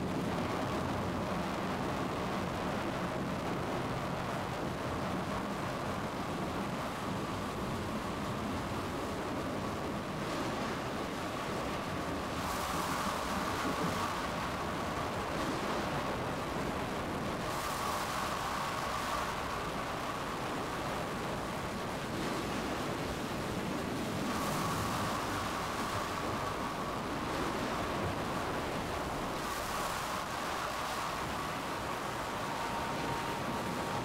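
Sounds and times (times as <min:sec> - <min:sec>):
faint steady tone: 0:00.0 - 0:34.0
tornado wind roaring: 0:00.0 - 0:34.0.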